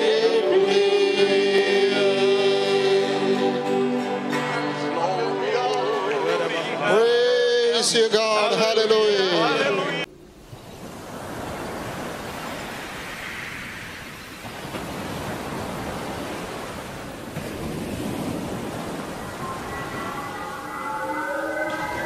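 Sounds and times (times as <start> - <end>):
sustained musical tones: 0.0 - 8.6, 19.2 - 22.0.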